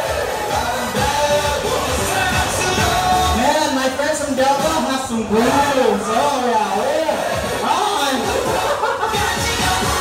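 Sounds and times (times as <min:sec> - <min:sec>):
music playing: 0:00.0 - 0:10.0
voice over loudspeaker: 0:01.0 - 0:08.6.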